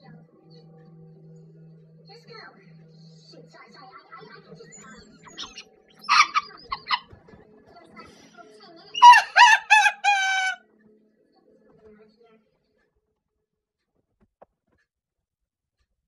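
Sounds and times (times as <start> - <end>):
rooster crowing: 6.1 - 7.0, 9.0 - 10.6
rough short rooster calls: 9.0 - 10.6.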